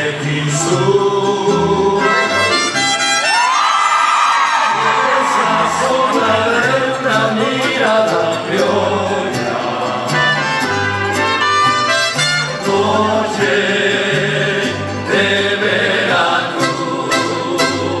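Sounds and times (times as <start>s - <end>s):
strummed guitars: 0.0s - 3.6s, 4.5s - 18.0s
trumpets: 2.0s - 3.6s, 10.1s - 12.8s.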